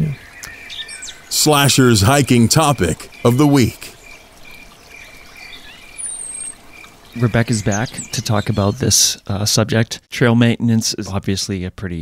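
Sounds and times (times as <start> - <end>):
bird chirping: 0.0 - 9.3
soft steady hiss: 0.0 - 12.0.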